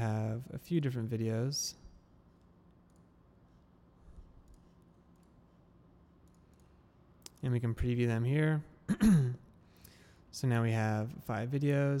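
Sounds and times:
faint computer mouse clicks: 6.2s - 7.4s.

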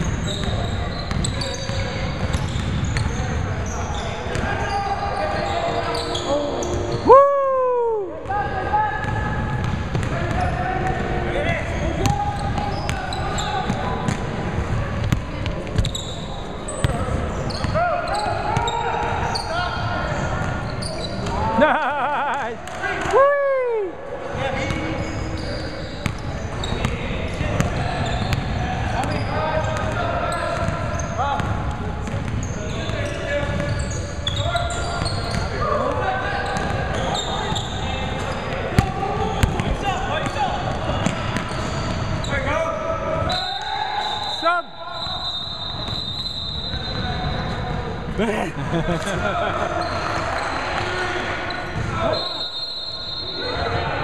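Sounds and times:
sneakers squeaking: 0.0s - 7.2s, 9.0s - 21.6s, 24.3s - 53.9s
squeals falling in pitch: 3.7s - 7.3s
basketball bouncing: 9.0s - 11.0s, 38.8s - 39.7s.

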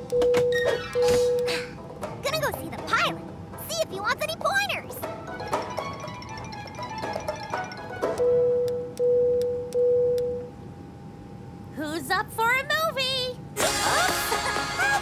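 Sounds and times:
light background music: 0.0s - 9.1s.

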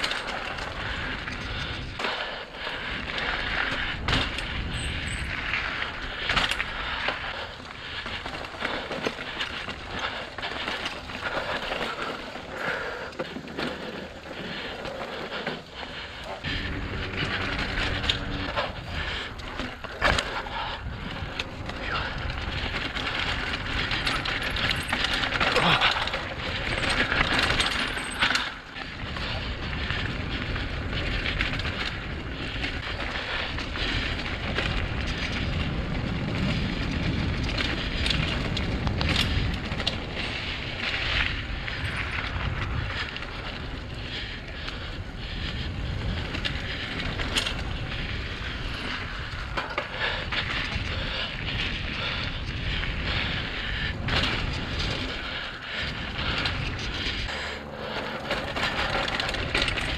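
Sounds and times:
wind on microphone: 0.0s - 10.2s, 16.0s - 59.9s
bicycle frame rattling: 0.0s - 59.9s.

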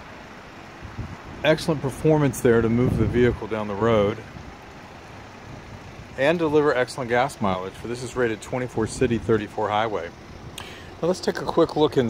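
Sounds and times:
outdoor background hiss and rumble: 0.0s - 12.0s.

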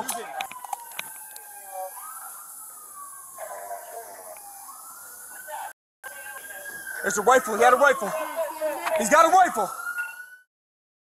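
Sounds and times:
emergency siren wailing: 0.0s - 10.5s.

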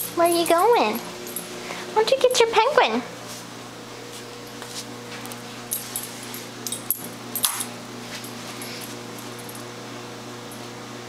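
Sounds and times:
dog collar tags jingling: 0.0s - 1.5s, 5.7s - 7.8s.

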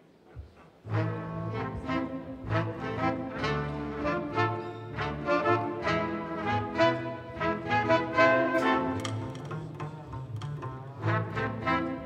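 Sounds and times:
trumpet: 0.9s - 9.6s, 11.0s - 12.0s
tenor saxophone: 0.9s - 12.0s
jazz band playing swing: 5.1s - 12.0s.

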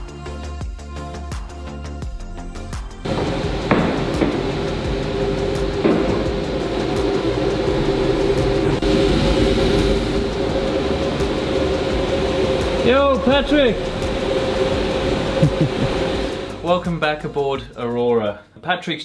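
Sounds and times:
dust extraction machinery humming: 3.0s - 17.1s.

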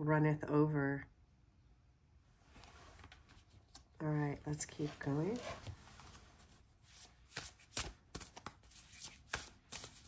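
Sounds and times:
cards being shuffled: 4.7s - 10.0s.

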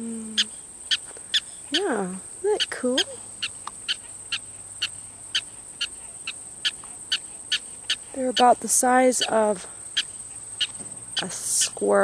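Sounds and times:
prairie dog squeaking: 0.4s - 11.8s.

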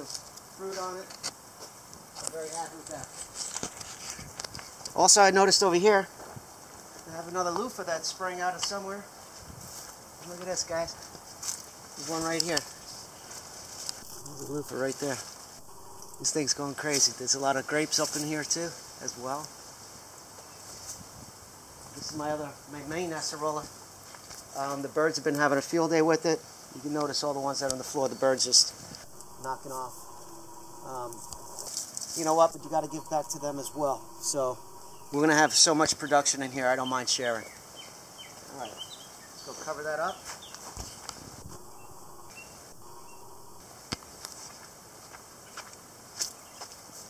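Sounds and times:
outdoor background: 0.0s - 25.8s, 26.4s - 47.0s
steady high-pitched hiss: 0.0s - 47.0s.

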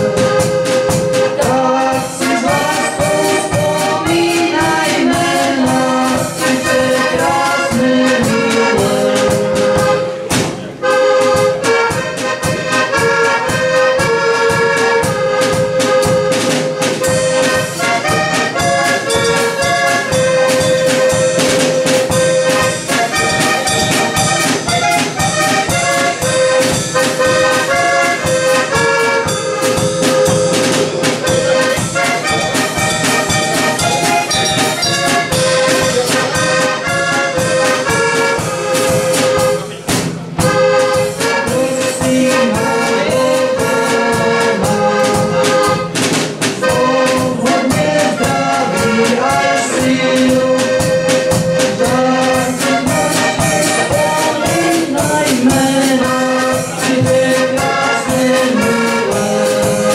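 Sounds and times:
button accordion folk tune: 0.0s - 59.9s
drum kit steady beat: 0.0s - 59.9s.

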